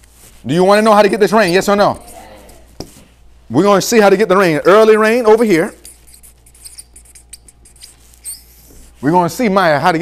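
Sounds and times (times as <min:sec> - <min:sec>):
marker squeaking on paper: 0:00.6 - 0:03.0, 0:05.0 - 0:08.9.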